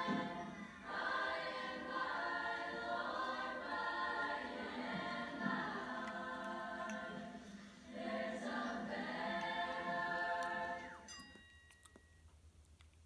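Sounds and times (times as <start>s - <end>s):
voices singing held notes: 0.0s - 11.1s.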